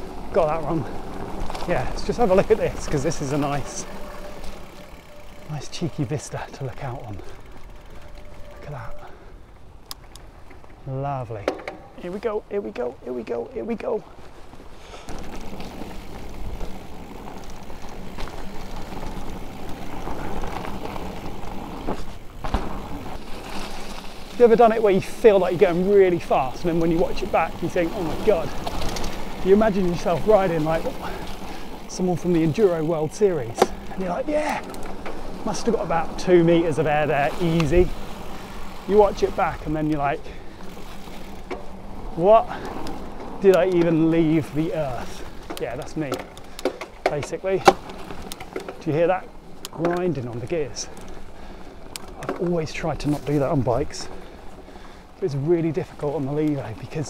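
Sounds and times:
bike knocking over bumps: 0:11.4 - 0:12.0, 0:15.0 - 0:53.4
tyre and rushing air noise: 0:14.1 - 0:49.6.

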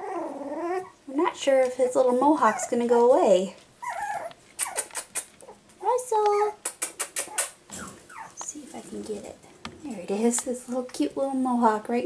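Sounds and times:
puppy whining: 0:00.0 - 0:01.1, 0:02.3 - 0:02.9, 0:03.8 - 0:05.6, 0:06.8 - 0:08.5.

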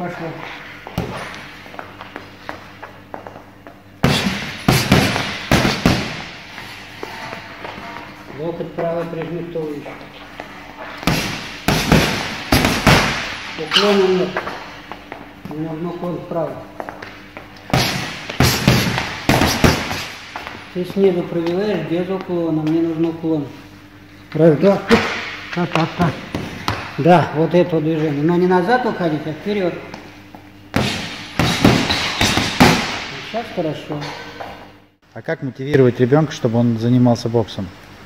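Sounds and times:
gloves punching heavy bag: 0:04.0 - 0:06.5, 0:11.0 - 0:14.2, 0:17.7 - 0:20.5, 0:30.8 - 0:33.2.

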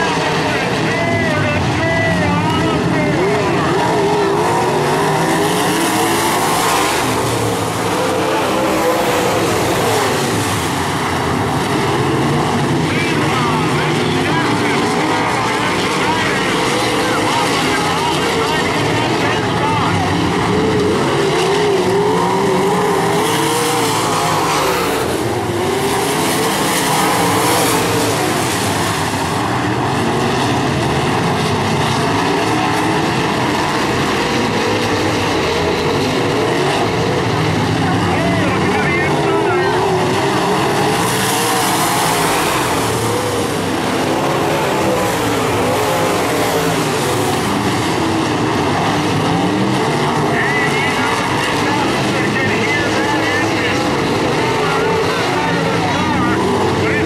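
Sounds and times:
race car engines at full pace: 0:00.0 - 0:57.0.

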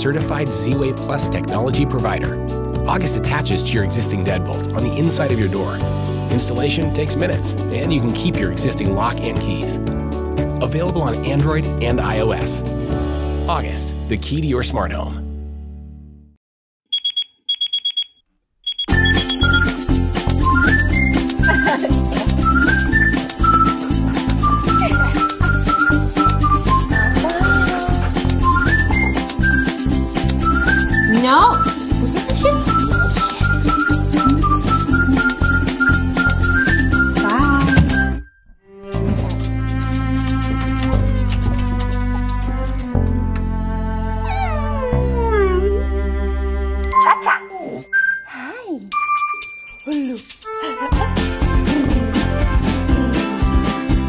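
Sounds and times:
upbeat music: 0:00.0 - 0:13.9, 0:18.9 - 0:38.2, 0:46.8 - 0:48.2, 0:48.9 - 0:54.0
alarm clock beeping: 0:16.9 - 0:19.6, 0:46.9 - 0:48.3
dog whining: 0:27.0 - 0:28.9, 0:43.9 - 0:46.0.

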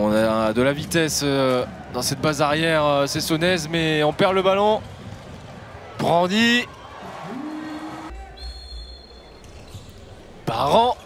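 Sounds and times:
referee's whistle blast: 0:07.3 - 0:09.4.

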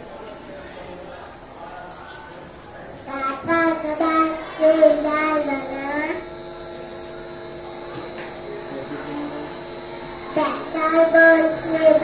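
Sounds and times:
electrical hum: 0:00.1 - 0:12.0.

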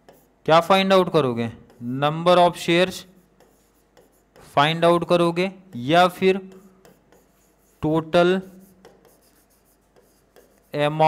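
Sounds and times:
marker pen writing on board: 0:00.0 - 0:00.5, 0:01.4 - 0:02.1, 0:02.8 - 0:04.7, 0:05.7 - 0:11.0.

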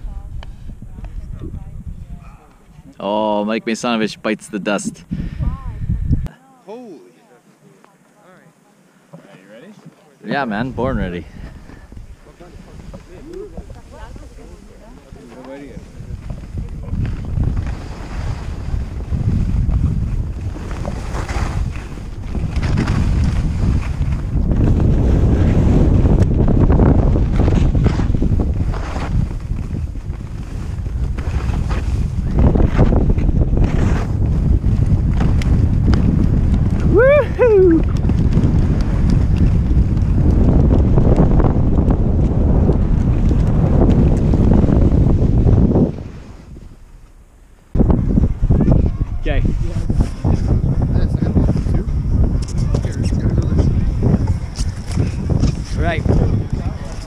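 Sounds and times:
wind buffeting microphone: 0:00.0 - 0:03.0, 0:03.8 - 0:06.3, 0:10.6 - 0:57.0
skis scraping over snow: 0:09.3 - 0:37.0, 0:37.8 - 0:47.2, 0:48.8 - 0:57.0.

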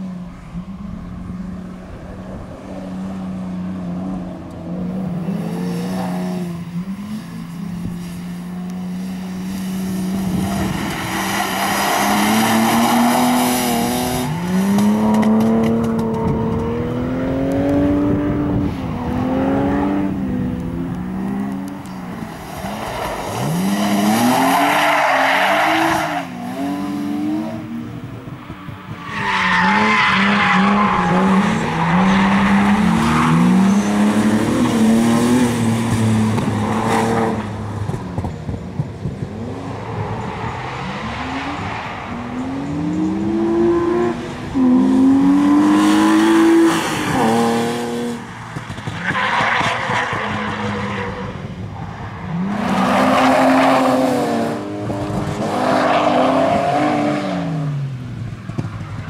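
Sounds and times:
car engine revving: 0:00.8 - 0:28.1, 0:29.2 - 0:51.4.

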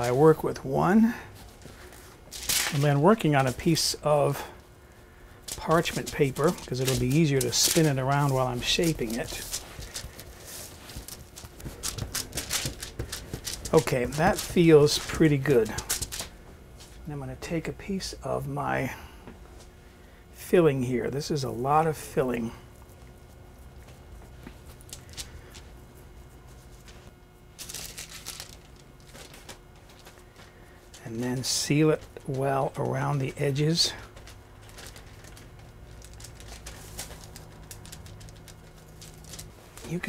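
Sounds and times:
parchment paper rustle: 0:00.0 - 0:17.0, 0:21.2 - 0:40.0.

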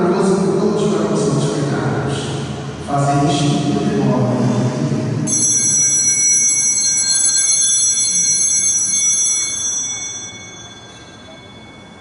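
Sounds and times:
altar bells ringing: 0:05.2 - 0:12.0.

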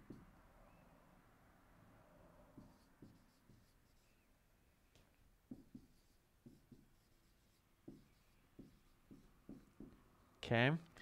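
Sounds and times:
marker writing on whiteboard: 0:00.0 - 0:00.4, 0:02.5 - 0:10.4.

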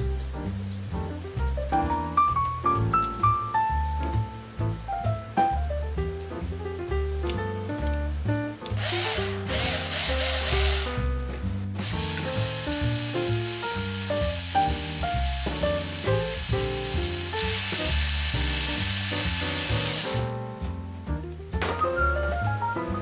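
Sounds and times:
background music: 0:00.0 - 0:23.0
cordless drill whirring: 0:08.8 - 0:11.0, 0:11.8 - 0:20.3.

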